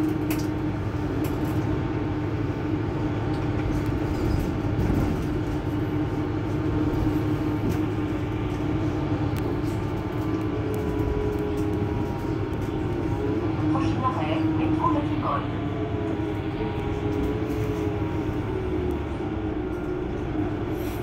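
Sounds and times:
bus engine idling: 0.0 - 21.0.

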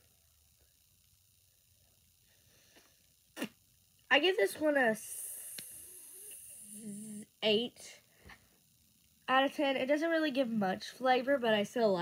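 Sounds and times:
faint steady hiss: 0.0 - 12.0
girl humming: 5.0 - 7.3.

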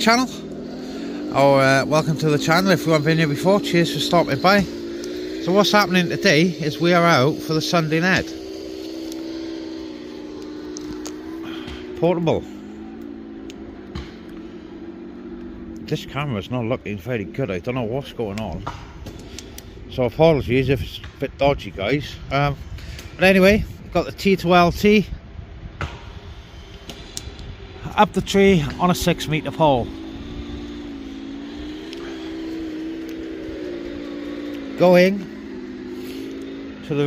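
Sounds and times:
outdoor background rumble: 0.0 - 37.0
steady low hum: 0.0 - 37.0
man speaking: 1.3 - 4.7, 15.8 - 18.7, 27.8 - 30.0, 34.7 - 35.3.

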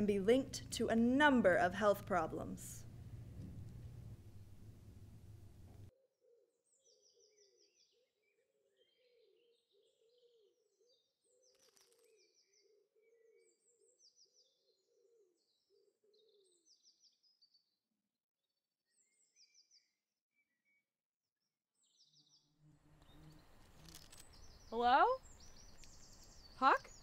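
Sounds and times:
small birds chirping and trilling: 6.6 - 17.8, 18.9 - 20.8, 21.8 - 27.0.

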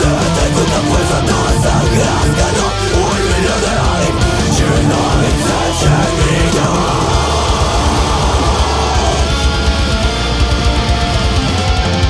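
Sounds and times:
distorted electric guitar metal riff: 0.0 - 12.0.

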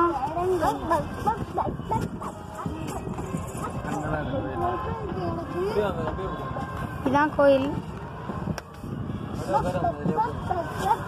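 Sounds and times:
people calling out and talking: 0.0 - 11.0
wind buffeting: 0.0 - 11.0.

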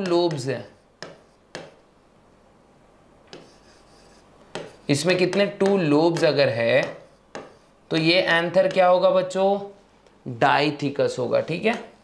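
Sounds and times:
chalk scraping on blackboard: 0.3 - 1.8, 3.3 - 8.0.

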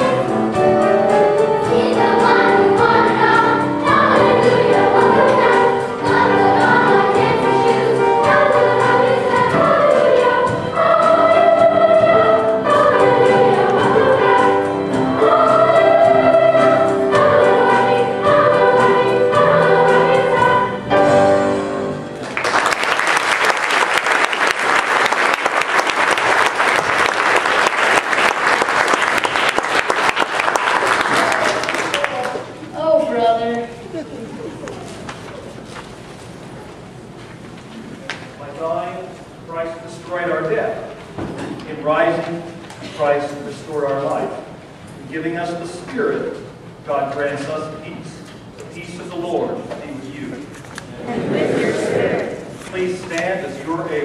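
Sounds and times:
children's choir singing: 0.0 - 22.1, 50.9 - 54.0
audience applauding: 22.2 - 32.6.

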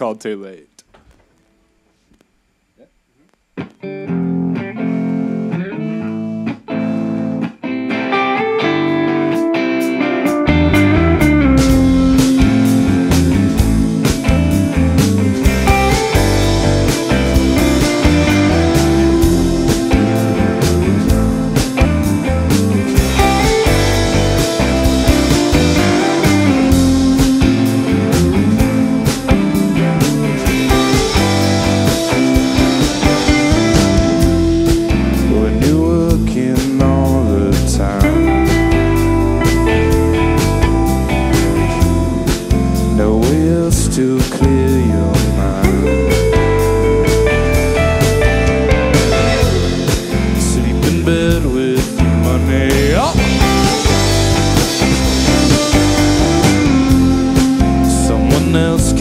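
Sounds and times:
electric guitar: 2.8 - 59.0
drum kit: 8.9 - 59.0
keyboard: 10.2 - 59.0.

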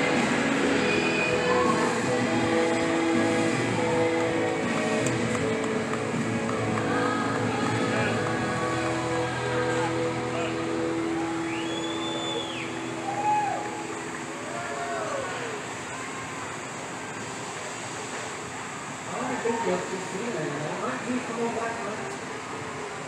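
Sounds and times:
rising and falling cries: 0.0 - 5.3, 6.5 - 16.7
background music: 0.0 - 14.5
crowd voices: 0.0 - 23.0.

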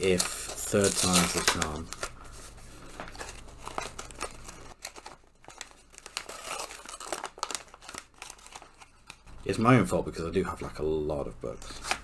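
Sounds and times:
paper packaging crinkling and tearing: 0.0 - 10.0.

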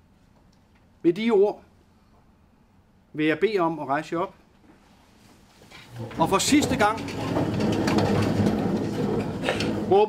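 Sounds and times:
chairs scraping: 5.6 - 10.0.

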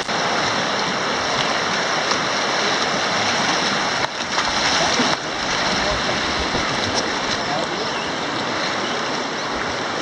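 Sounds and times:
river rapids rushing over rocks: 0.0 - 10.0.

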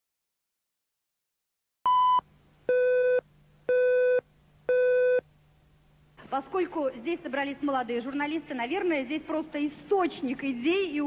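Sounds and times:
countdown beeps: 1.9 - 5.2.

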